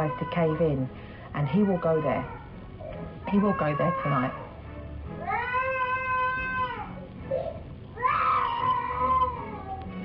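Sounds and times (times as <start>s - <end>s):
child wailing: 5.2s - 7.0s, 8.0s - 9.9s.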